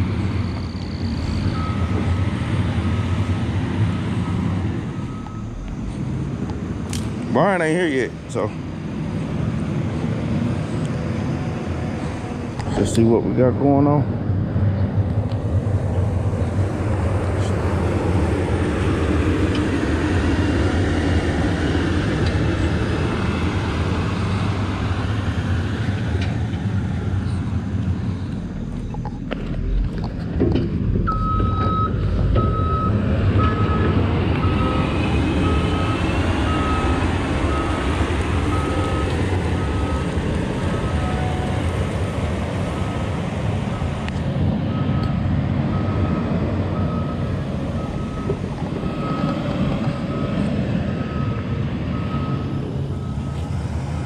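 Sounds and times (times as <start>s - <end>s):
diesel engine running: 0.0s - 54.0s
reversing alarm beeping: 0.4s - 6.0s, 31.0s - 44.0s, 44.6s - 54.0s.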